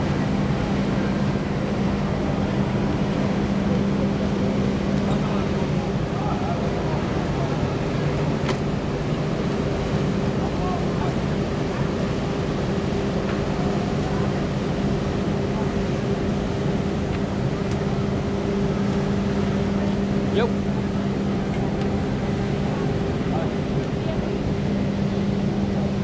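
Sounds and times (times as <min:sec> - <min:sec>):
passengers chatting: 0:00.0 - 0:26.0
ship machinery humming: 0:00.0 - 0:26.0.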